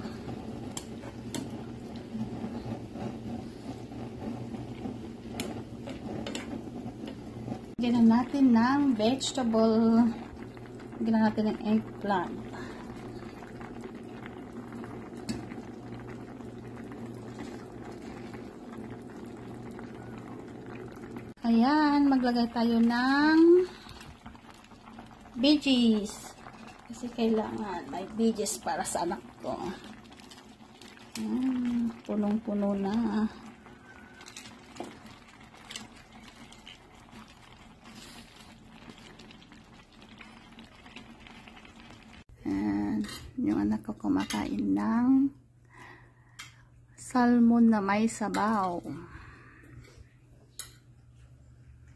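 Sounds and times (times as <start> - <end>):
soup bubbling in a pot: 0.0 - 43.0.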